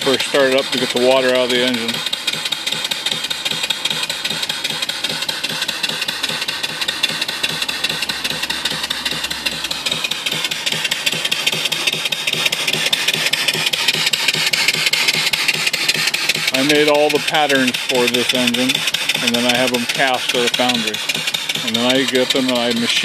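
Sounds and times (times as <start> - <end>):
steam engine running: 0.0 - 23.0
steam hiss: 0.0 - 23.0.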